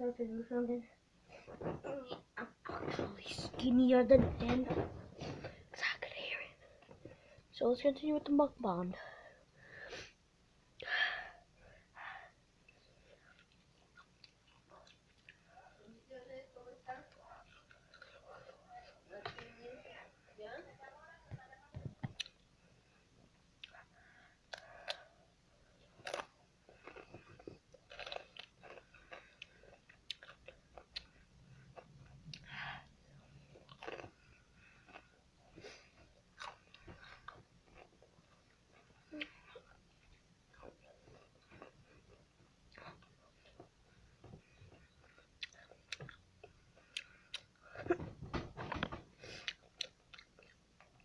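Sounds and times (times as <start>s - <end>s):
chewing and crunching chips: 13.0s - 15.5s, 25.8s - 32.6s, 33.3s - 47.8s, 49.4s - 51.0s.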